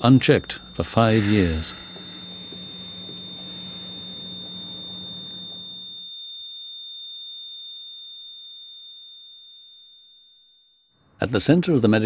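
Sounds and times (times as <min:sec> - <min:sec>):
room noise: 0:00.0 - 0:06.1
heart monitor flatline tone: 0:00.0 - 0:07.1.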